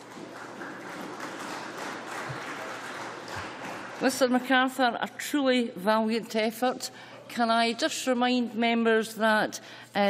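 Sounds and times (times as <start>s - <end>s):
crowd applauding: 0.0s - 4.2s.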